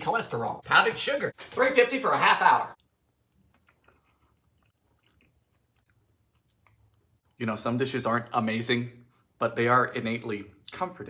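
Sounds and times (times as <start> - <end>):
mouth clicks of person chewing: 2.8 - 7.4.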